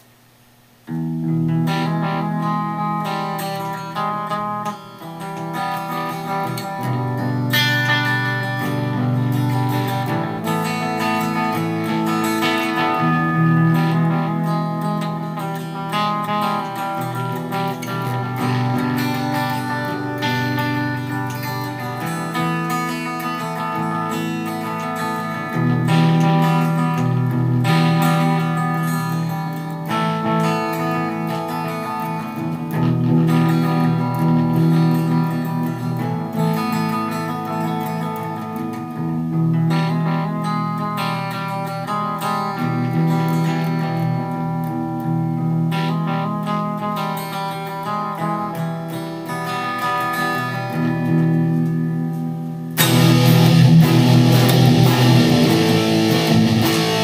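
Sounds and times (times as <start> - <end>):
electric guitar chords: 0.0 - 57.0.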